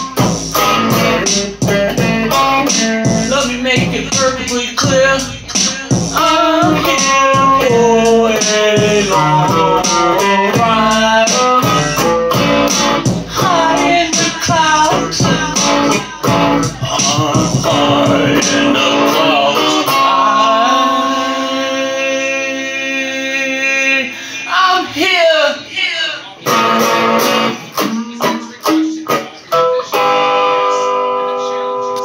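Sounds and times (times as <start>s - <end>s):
electric guitar strumming: 0.0s - 24.3s, 26.4s - 32.0s
man singing: 0.0s - 32.0s.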